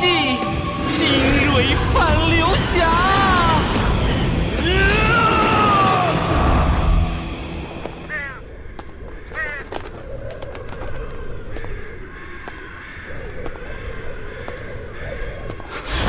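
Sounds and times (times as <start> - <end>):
bird cawing: 8.0 - 15.9.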